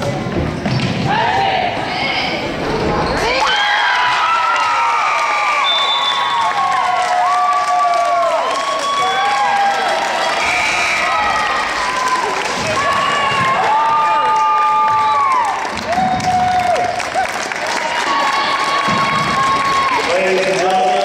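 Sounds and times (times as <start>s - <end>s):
crowd cheering and clapping: 3.3s - 21.0s.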